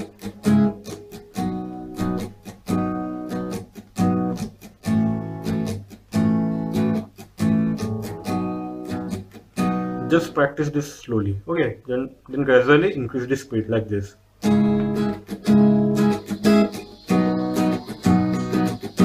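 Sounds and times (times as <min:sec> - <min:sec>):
acoustic guitar strumming chords: 0:00.0 - 0:10.4, 0:14.4 - 0:19.0
muted percussive guitar strums: 0:00.0 - 0:10.4, 0:14.4 - 0:19.0.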